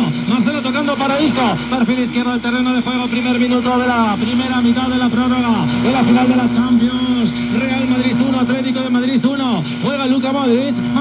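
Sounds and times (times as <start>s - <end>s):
low hum: 0.0s - 11.0s
man commentating on radio: 0.0s - 11.0s.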